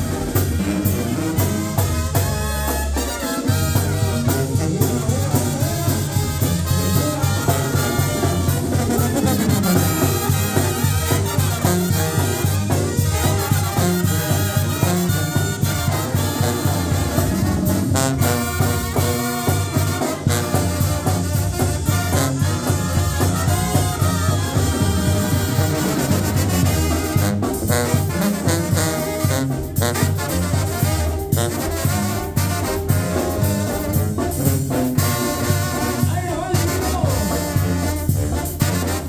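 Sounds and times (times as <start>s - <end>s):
sousaphone bass line: 0.0s - 30.3s
bass drum and cymbals: 0.0s - 39.0s
brass band playing: 0.0s - 39.0s.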